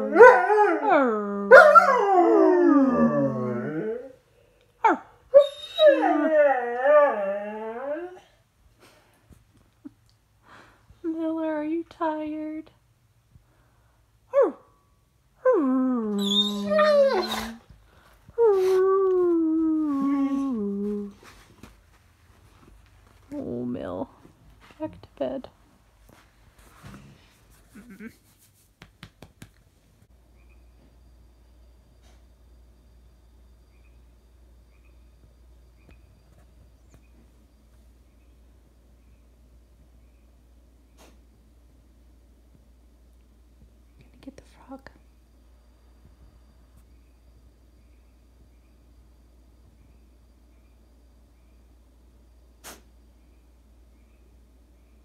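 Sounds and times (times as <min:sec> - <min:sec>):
dog howling: 0:00.0 - 0:04.2, 0:04.8 - 0:08.3, 0:15.4 - 0:17.6.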